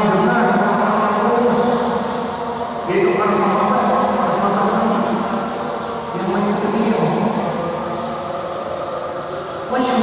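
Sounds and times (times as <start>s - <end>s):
man speaking in reverberant hall: 0.0s - 8.5s, 9.2s - 10.0s.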